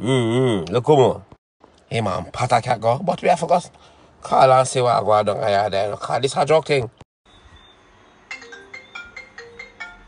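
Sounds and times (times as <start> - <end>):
phone ringtone melody: 8.3 - 10.0.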